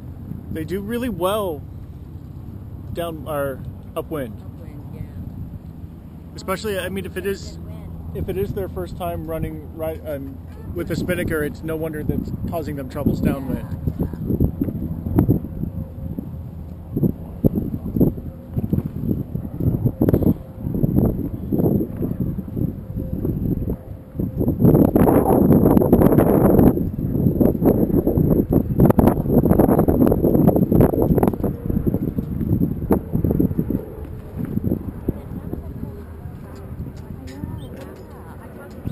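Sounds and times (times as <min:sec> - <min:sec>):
wind buffeting microphone: 0:00.0 - 0:38.9.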